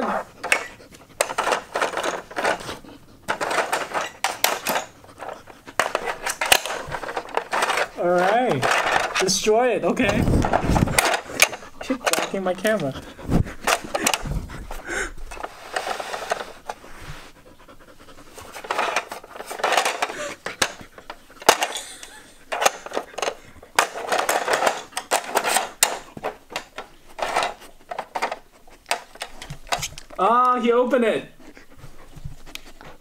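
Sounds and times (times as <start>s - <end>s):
dog panting heavily: 0.0s - 8.2s, 10.4s - 24.0s, 25.7s - 30.2s, 31.3s - 33.0s
plastic clicks and knocks: 0.4s - 9.3s, 18.5s - 30.2s.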